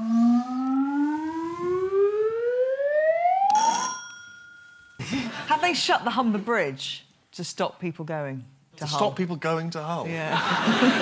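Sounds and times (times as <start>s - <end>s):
rising siren-like tone: 0.0s - 3.7s
ringing chime: 3.5s - 5.0s.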